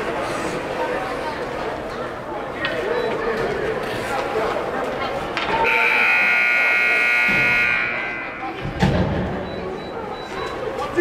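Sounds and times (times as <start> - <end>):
scoreboard buzzer: 5.6 - 8.6.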